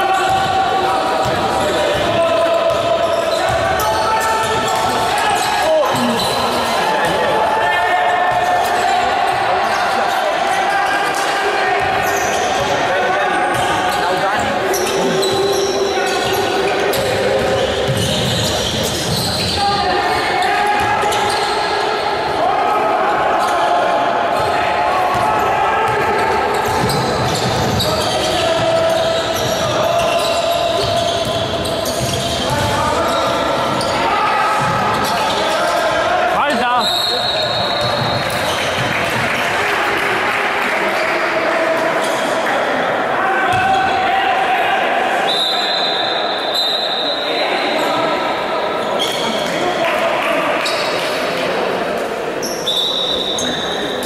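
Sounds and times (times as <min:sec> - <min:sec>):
voices echoing in hall: 0:00.0 - 0:54.0
basketball bouncing on court: 0:00.2 - 0:00.6, 0:17.0 - 0:19.6, 0:25.1 - 0:30.2, 0:30.8 - 0:33.9, 0:34.6 - 0:35.2, 0:37.5 - 0:39.4.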